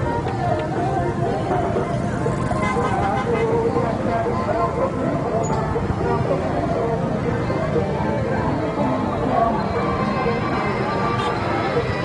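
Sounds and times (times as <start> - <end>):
babble of many voices: 0.0 - 12.0
heavy street traffic: 0.0 - 12.0
motorbike engines: 0.0 - 12.0.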